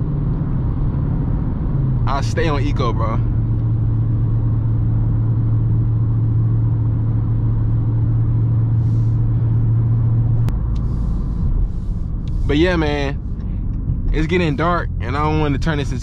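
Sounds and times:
car engine drone: 0.0 - 16.0
road noise: 0.0 - 16.0.

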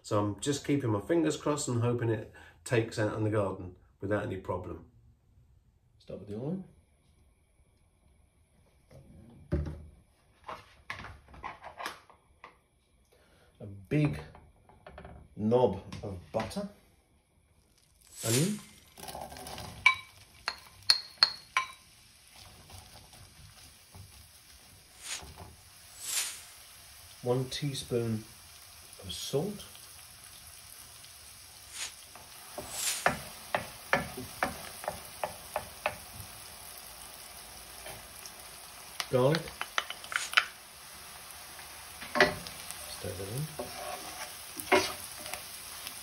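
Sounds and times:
onion sizzling in hot oil: 17.0 - 46.0
bowl and spoon clinking: 19.8 - 21.9
wooden spoon scraping pan: 31.7 - 36.0, 42.1 - 45.8.

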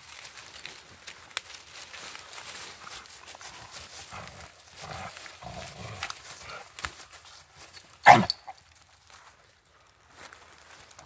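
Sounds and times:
dogs play growling: 3.4 - 6.7
dog barking: 8.0 - 8.6.

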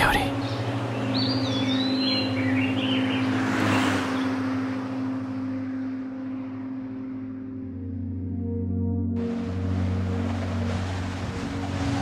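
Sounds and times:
car passing on highway: 0.6 - 7.4
low steady drone: 4.3 - 12.0.

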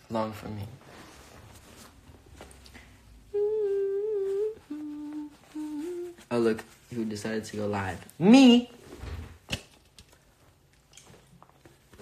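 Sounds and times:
man humming: 3.3 - 6.3.

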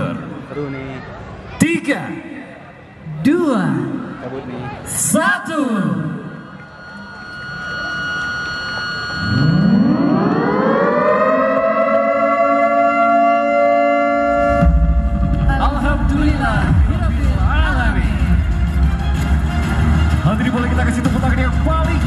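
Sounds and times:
siren winding up to a wail: 6.2 - 15.5
deep low rumble: 14.4 - 18.8.

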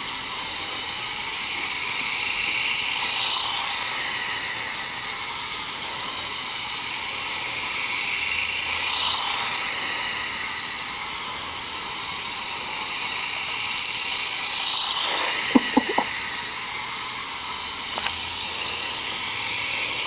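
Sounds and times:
toy truck motor whirring: 0.0 - 20.0.

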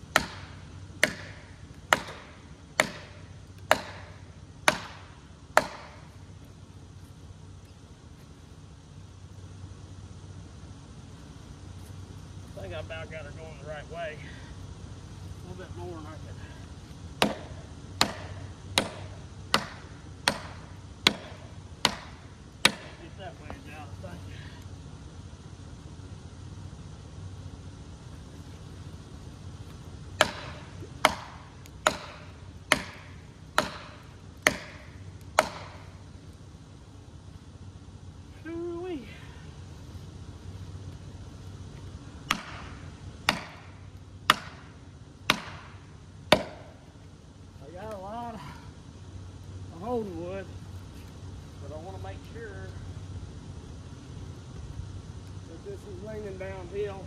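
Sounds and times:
hammer striking wedges: 0.1 - 6.1, 17.2 - 23.0, 30.2 - 35.8, 42.3 - 44.7, 45.3 - 46.7.

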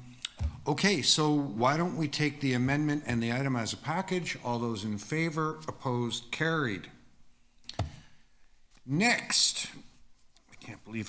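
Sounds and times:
person speaking: 0.0 - 7.1, 8.8 - 11.0.

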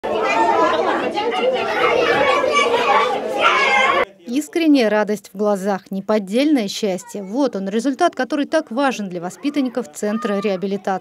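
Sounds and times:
children chattering: 0.0 - 4.2, 6.6 - 11.0.

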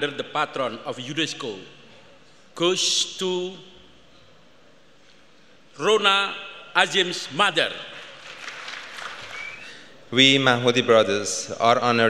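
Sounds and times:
audience applauding: 7.9 - 9.8.

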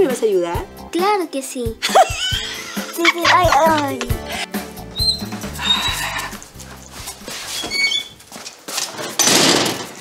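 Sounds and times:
background music with low bass: 0.0 - 1.0, 1.6 - 7.5
horse whinny: 5.2 - 6.4.

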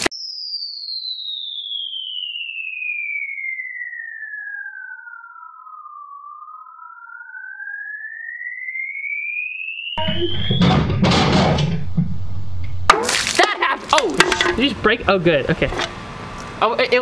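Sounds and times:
electronic whistle tone gliding down: 0.0 - 11.1
electronic whistle tone rising: 0.0 - 12.0.

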